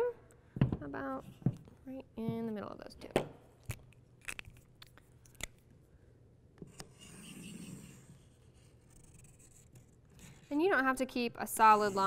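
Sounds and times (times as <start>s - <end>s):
marker scratching on paper: 6.7s - 10.7s, 11.6s - 12.0s.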